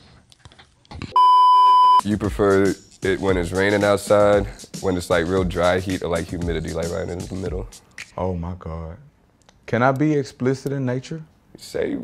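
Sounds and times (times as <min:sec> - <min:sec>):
high-pitched censor bleep: 0:01.2 - 0:02.0.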